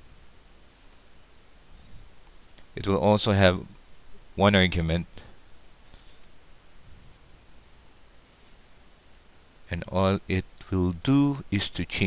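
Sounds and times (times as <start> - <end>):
faint room hiss: 0.0 - 12.0
faint high-pitched chirp: 0.6 - 1.2, 8.2 - 9.0.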